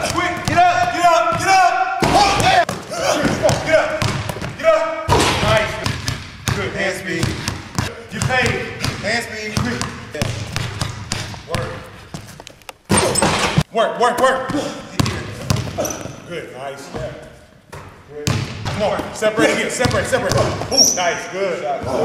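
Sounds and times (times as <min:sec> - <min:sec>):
basketball bouncing on wooden floor: 0:00.0 - 0:04.6, 0:05.2 - 0:13.6, 0:14.5 - 0:16.2, 0:16.9 - 0:19.2, 0:19.8 - 0:20.7.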